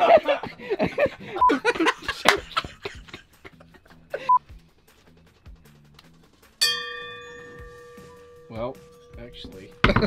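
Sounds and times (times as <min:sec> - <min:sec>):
person laughing: 0:00.0 - 0:04.4
faint background music: 0:00.0 - 0:10.0
bell-like strike ringing: 0:06.6 - 0:10.0.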